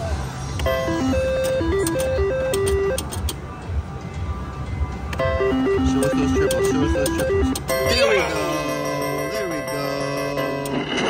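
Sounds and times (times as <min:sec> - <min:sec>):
low casino hum: 0:00.0 - 0:11.0
slot machine electronic beeps: 0:00.6 - 0:03.4, 0:05.2 - 0:11.0
sharp clicks: 0:01.4 - 0:03.4.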